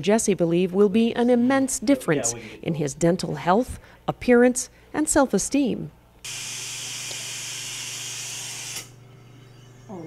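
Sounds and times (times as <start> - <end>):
dental equipment hissing: 6.2 - 9.0.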